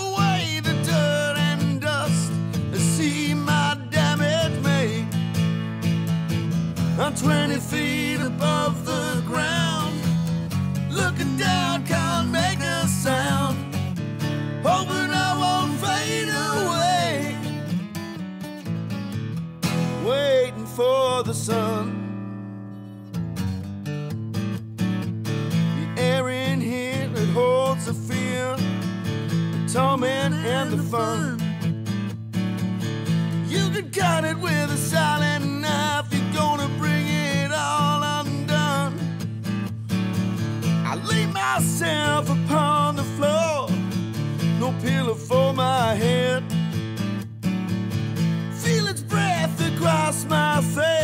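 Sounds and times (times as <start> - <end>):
acoustic guitar strumming: 0.0 - 51.0.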